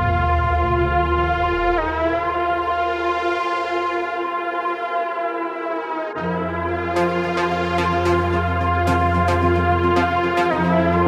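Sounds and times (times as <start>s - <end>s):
sustained electronic chord: 0.0s - 11.0s.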